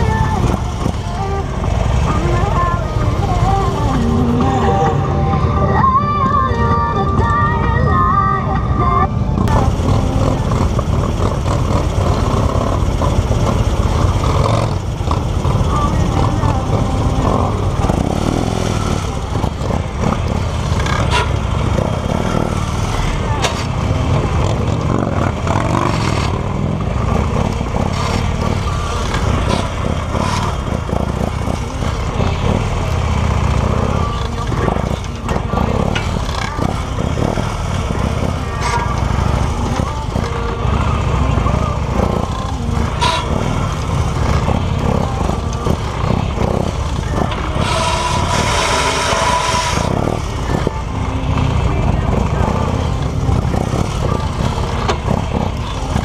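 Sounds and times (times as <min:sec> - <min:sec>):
motorcycle engine at low speed: 0:00.0 - 0:56.0.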